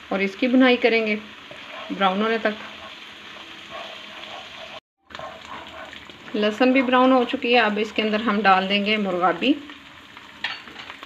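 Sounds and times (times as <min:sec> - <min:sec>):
paste sizzling in hot fat: 0:00.0 - 0:11.0.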